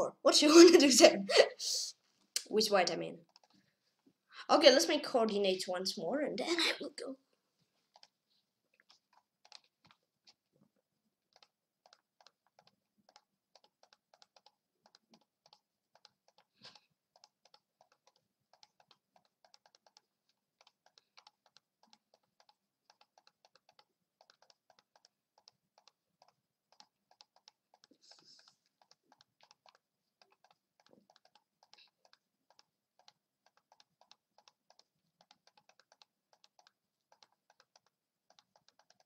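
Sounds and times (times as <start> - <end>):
computer mouse clicks: 3.2 - 3.6, 7.9 - 8.2, 8.8 - 10.4, 11.3 - 39.0.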